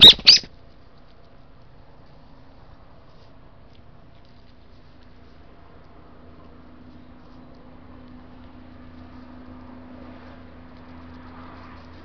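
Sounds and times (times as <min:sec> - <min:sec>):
bird calls: 0:00.0 - 0:00.5.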